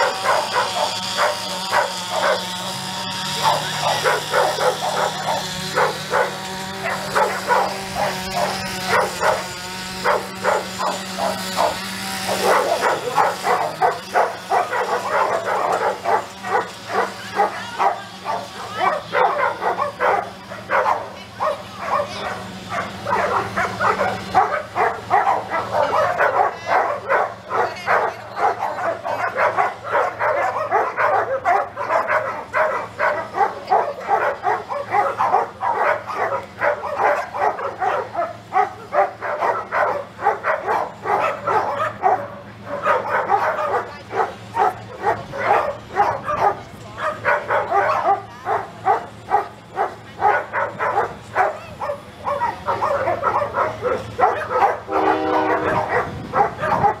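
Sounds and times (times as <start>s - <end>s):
dogs barking: 0.0s - 57.0s.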